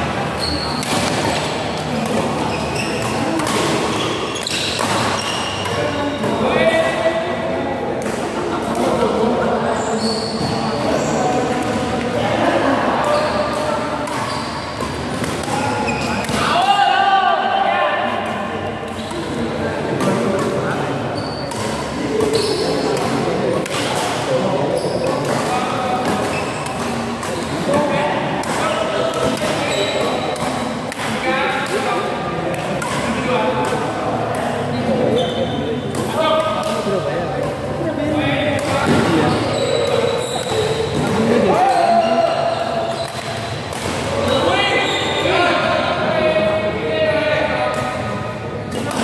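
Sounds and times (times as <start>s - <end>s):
people talking: 0.0s - 49.0s
rackets hitting shuttlecock: 0.3s - 7.0s, 13.0s - 16.7s, 18.0s - 45.3s.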